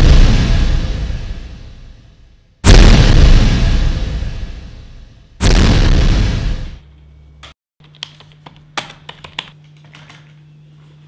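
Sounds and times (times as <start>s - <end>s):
computer keyboard typing: 7.8s - 9.6s.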